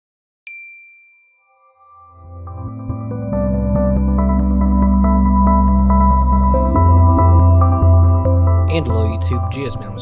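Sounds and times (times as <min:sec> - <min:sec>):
bright chime: 0:00.5 - 0:02.2
intro music with low drone: 0:02.2 - 0:10.0.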